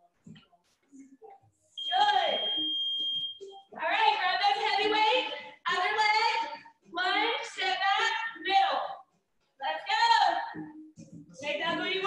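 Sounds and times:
long high timer beep: 1.8 - 3.6
woman talking: 3.8 - 9.0, 9.6 - 10.5.

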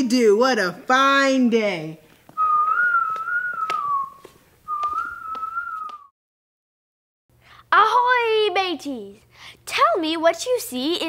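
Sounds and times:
light footstep clicks: 2.1 - 6.1
person whistling a tune: 2.4 - 6.1.

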